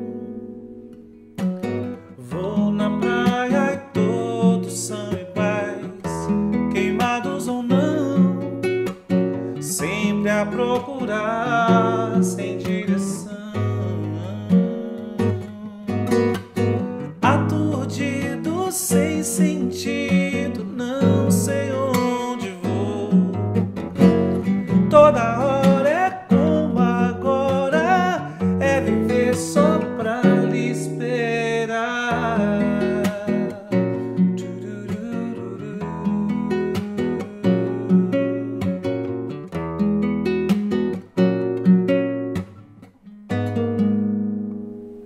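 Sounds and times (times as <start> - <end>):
fingerpicked classical guitar: 0.0 - 45.0
wordless singing: 2.2 - 8.5, 9.5 - 16.5, 17.1 - 38.9.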